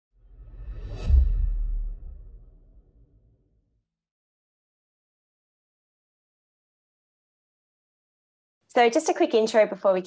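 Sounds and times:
low rumble: 0:00.2 - 0:03.4
whoosh swelling to deep boom: 0:00.2 - 0:03.5.

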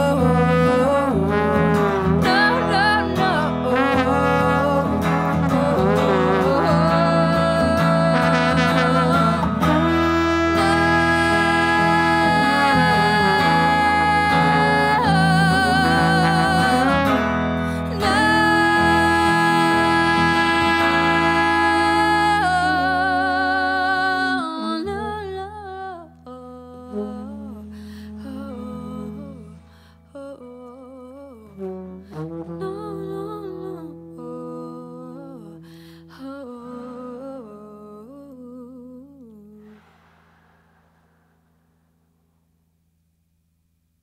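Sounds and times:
electric guitar: 0:00.0 - 0:25.6
woman singing: 0:00.0 - 0:39.9
trombone playing: 0:00.2 - 0:23.8, 0:31.6 - 0:34.1.

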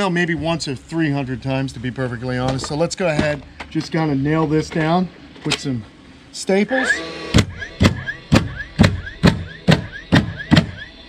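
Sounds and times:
stapler motor whir: 0:06.8 - 0:10.9.

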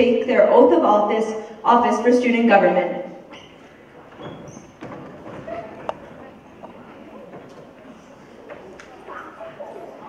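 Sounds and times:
murmur of voices in hall: 0:00.0 - 0:10.0
footsteps on stage: 0:03.3 - 0:09.2.

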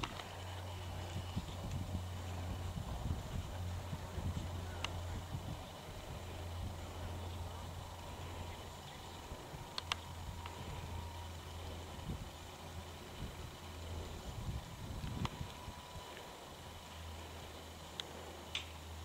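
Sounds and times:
low hum: 0:00.0 - 0:19.0
sharp clicks: 0:09.7 - 0:10.6.

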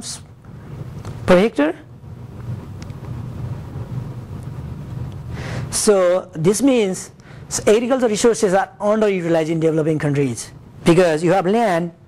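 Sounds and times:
low room noise rumble: 0:00.0 - 0:12.0.

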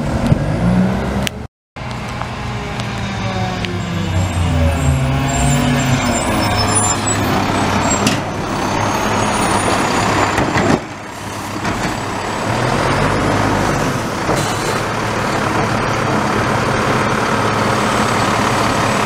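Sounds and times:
diesel truck engine running: 0:01.8 - 0:19.0.

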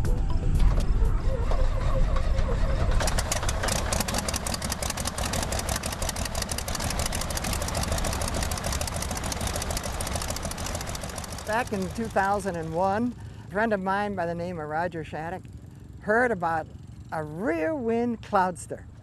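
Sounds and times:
light airplane piston engine: 0:00.8 - 0:19.0.

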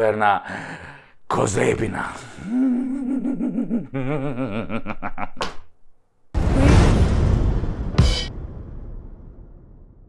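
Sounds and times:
man's wavering vocal sound: 0:02.4 - 0:04.9
man laughing: 0:02.4 - 0:05.5.

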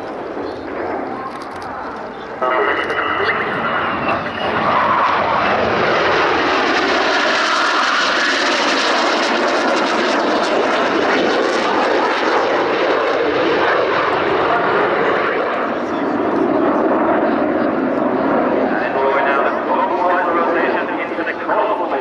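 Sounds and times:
jet engines flying overhead: 0:00.0 - 0:22.0.

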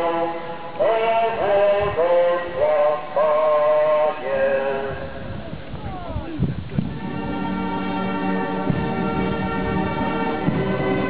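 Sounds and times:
people singing a slow hymn: 0:00.0 - 0:05.6.

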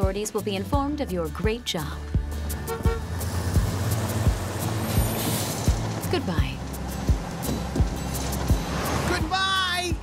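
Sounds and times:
background music with steady beat: 0:00.0 - 0:10.0
cartoon bus engine running: 0:02.3 - 0:10.0.

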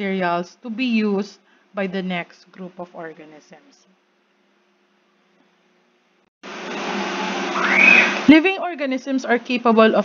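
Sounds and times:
whine rising in pitch: 0:06.4 - 0:08.4.

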